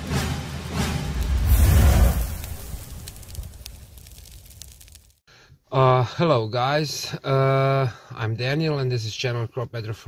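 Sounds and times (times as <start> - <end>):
deep whoosh: 0.8 - 4.1
faint crackles: 1.2 - 5.2.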